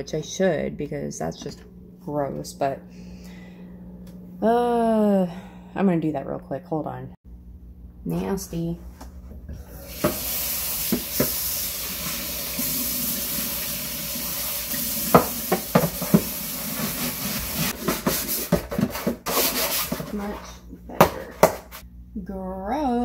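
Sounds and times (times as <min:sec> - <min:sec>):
faucet running into sink: 0:09.7 - 0:17.7
plastic knocking against sink: 0:15.1 - 0:16.3.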